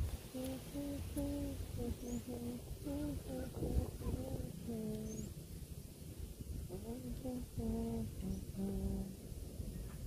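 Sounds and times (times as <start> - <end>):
person humming a tune: 0.3 - 5.3, 6.7 - 9.2.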